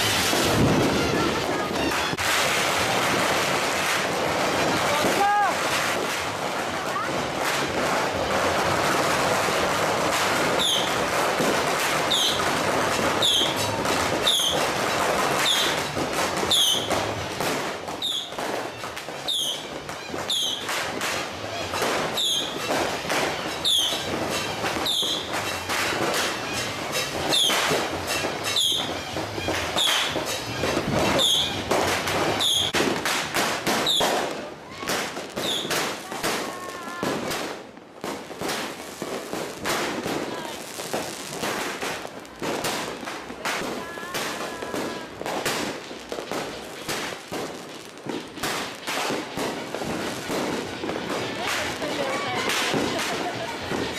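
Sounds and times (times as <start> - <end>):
firecracker cracks and bangs: 0.0 - 53.9
fireworks fizzing hiss: 0.0 - 53.9.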